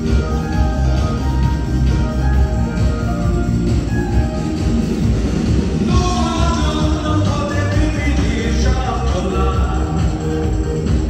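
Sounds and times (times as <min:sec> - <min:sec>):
person singing: 0:05.9 - 0:11.0.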